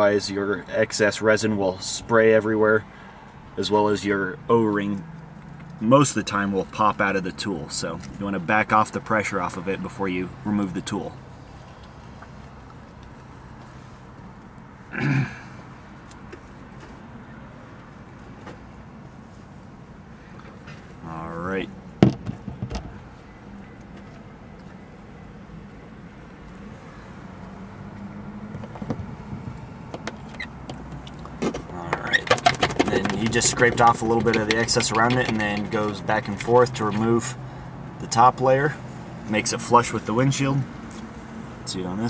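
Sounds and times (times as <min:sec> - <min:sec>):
road traffic passing: 0:00.0 - 0:42.0.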